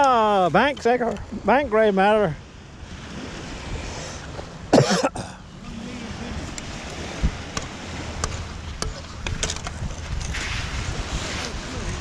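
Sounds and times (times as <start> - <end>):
man coughing: 4.7 - 5.4.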